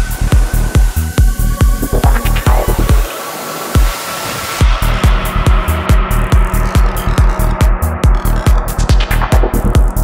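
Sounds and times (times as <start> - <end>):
rolling bassline: 0.0 - 3.1, 4.6 - 10.0
hissing noise wash: 0.0 - 6.6
kick drum: 0.4 - 3.1.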